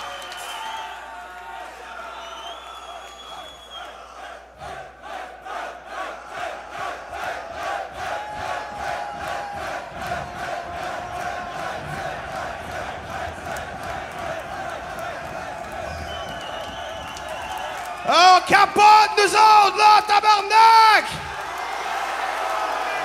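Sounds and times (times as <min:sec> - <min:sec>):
crowd chanting and shouting: 0:00.0 - 0:23.0.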